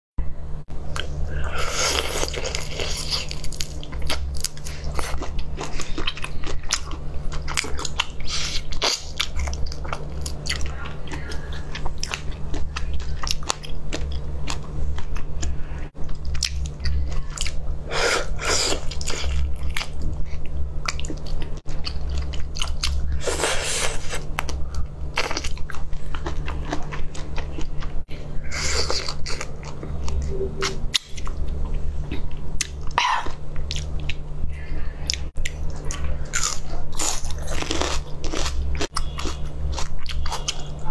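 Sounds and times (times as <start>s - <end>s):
steady low hum: 0.2s - 40.9s
wet chewing and smacking: 24.2s - 28.1s.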